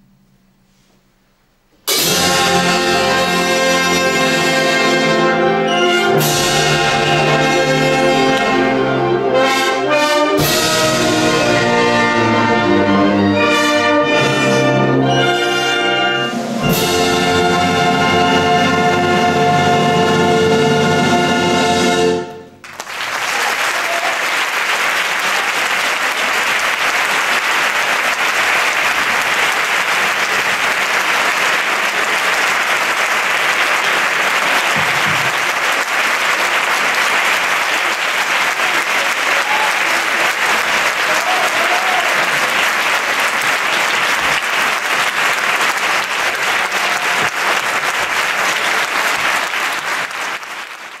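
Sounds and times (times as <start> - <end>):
audience applauding: 22.6 - 51.0.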